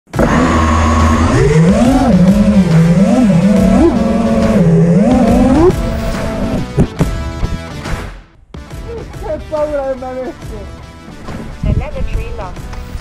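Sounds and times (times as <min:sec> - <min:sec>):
drone motors whining: 0:00.1 - 0:06.8.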